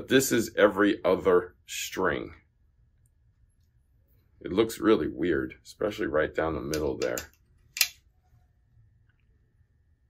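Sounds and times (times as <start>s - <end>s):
man speaking: 0.0s - 2.5s, 4.4s - 7.4s.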